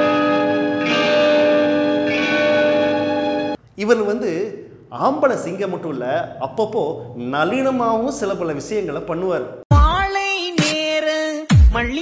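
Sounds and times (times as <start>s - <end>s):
ringing music chord: 0.0s - 3.6s.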